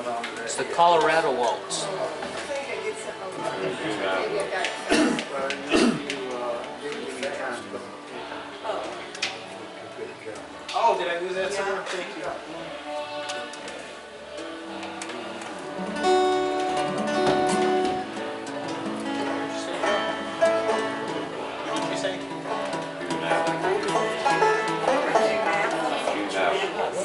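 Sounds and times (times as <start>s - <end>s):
people talking: 0.0s - 14.0s, 19.2s - 22.3s, 22.9s - 27.0s
fiddle: 12.7s - 27.0s
banjo: 14.2s - 27.0s.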